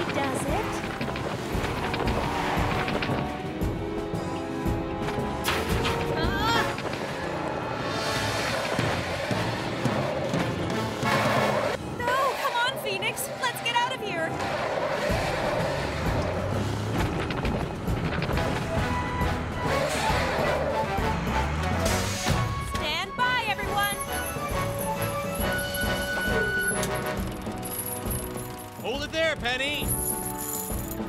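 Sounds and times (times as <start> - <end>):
cartoon background music: 0.0 - 14.3, 17.2 - 31.0.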